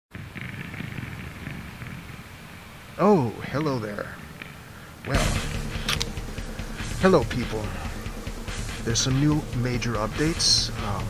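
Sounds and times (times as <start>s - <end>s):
low uneven rumbling: 0.1s - 11.0s.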